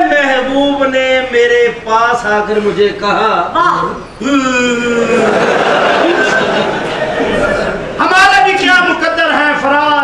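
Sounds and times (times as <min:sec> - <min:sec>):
man speaking loudly: 0:00.0 - 0:05.3, 0:08.0 - 0:10.0.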